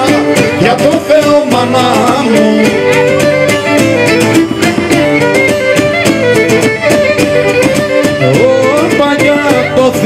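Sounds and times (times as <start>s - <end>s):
lute strumming a rhythm: 0.0s - 10.0s
violin bowing a melody: 0.0s - 10.0s.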